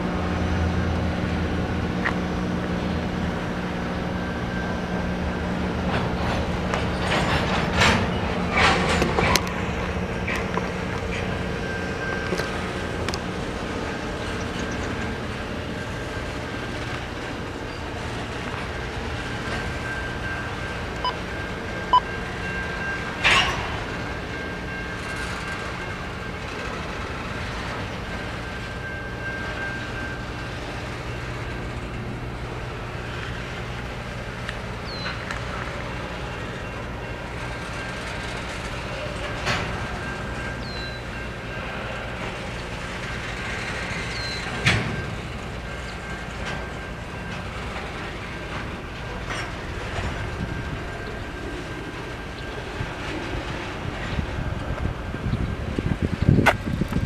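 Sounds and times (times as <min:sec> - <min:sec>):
steel wheels rumbling on rail: 0:00.0 - 0:57.0.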